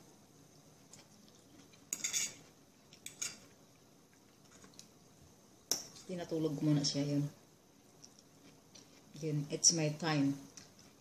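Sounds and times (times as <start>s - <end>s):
fork clinking on china plate: 1.9s - 2.4s.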